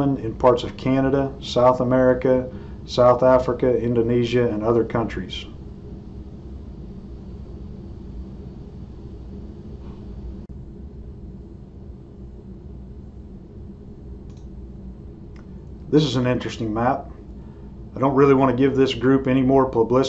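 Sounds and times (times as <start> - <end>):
faint high whine: 0.0 - 20.0
low electrical hum: 0.0 - 20.0
faint clicks: 14.2 - 14.5, 15.3 - 15.8.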